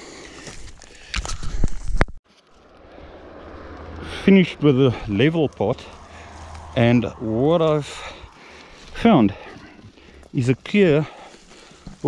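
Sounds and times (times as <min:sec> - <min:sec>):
vehicle on road: 0:02.2 - 0:12.0
footsteps through scrub: 0:04.4 - 0:12.0.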